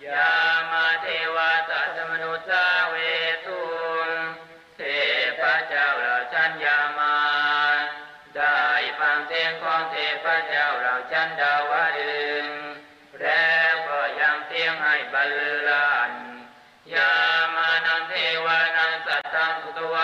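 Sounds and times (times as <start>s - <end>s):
person chanting: 0.0s - 20.0s.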